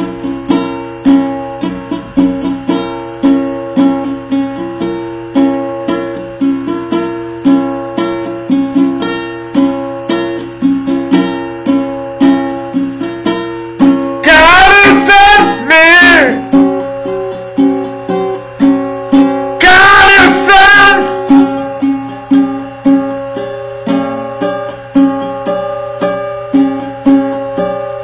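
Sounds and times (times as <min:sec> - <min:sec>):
ukulele strummed chords: 0:00.0 - 0:28.0.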